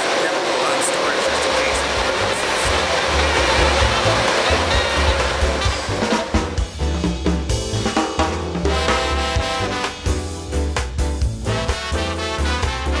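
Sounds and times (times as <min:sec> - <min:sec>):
machinery rushing noise: 0:00.0 - 0:07.6
drum beat: 0:01.5 - 0:13.0
music with bass line: 0:02.7 - 0:13.0.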